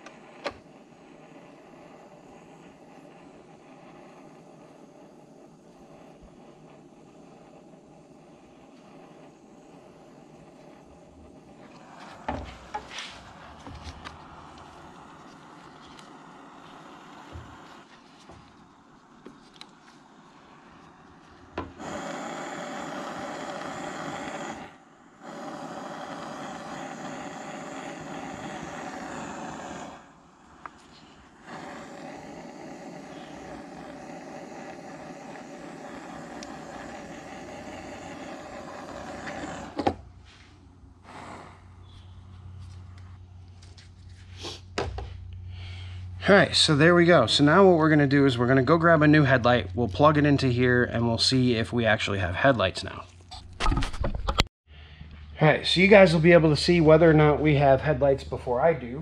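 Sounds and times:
torch flame hissing: 0:00.0 - 0:53.4, 0:55.2 - 0:59.0.

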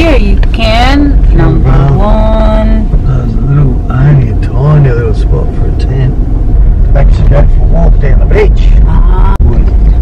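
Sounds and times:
car driving rumble from inside: 0:00.0 - 0:10.0.

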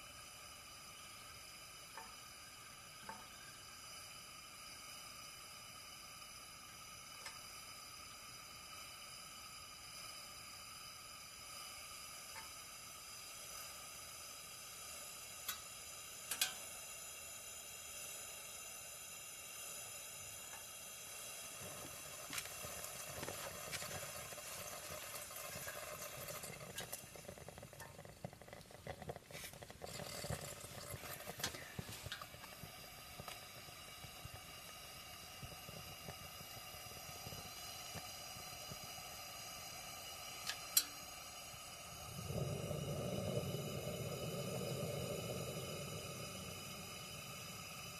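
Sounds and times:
camping lantern hissing: 0:00.0 - 0:47.9
sharp clicks and pops: 0:26.6 - 0:34.4.

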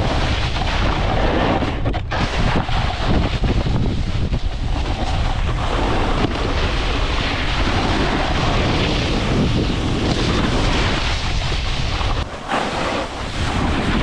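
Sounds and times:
snowboards scraping on snow: 0:00.0 - 0:14.0
wind rushing over microphone: 0:00.0 - 0:14.0.

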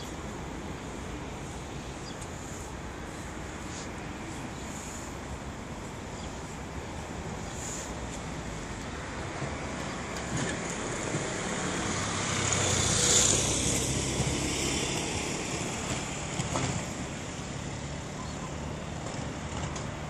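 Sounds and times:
vehicle passing: 0:07.6 - 0:19.0.

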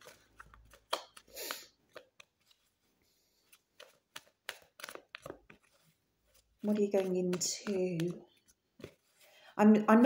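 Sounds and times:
cards being shuffled: 0:00.0 - 0:02.8, 0:03.4 - 0:09.3.

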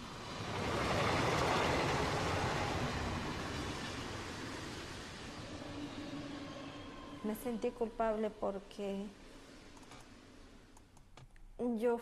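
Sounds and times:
train rumbling on rails: 0:00.0 - 0:08.6.

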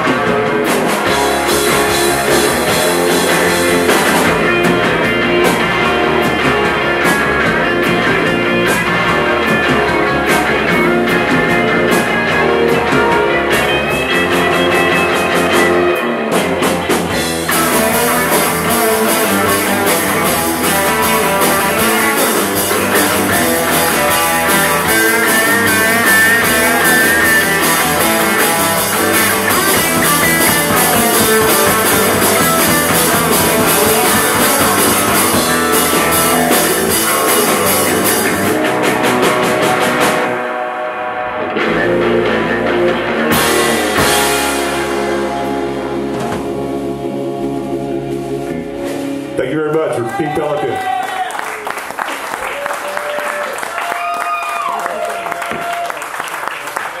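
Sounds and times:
surf rock band playing: 0:00.0 - 0:57.0.

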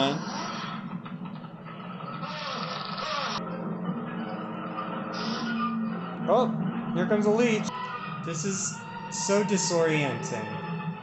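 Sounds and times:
low film score music: 0:00.0 - 0:11.0.

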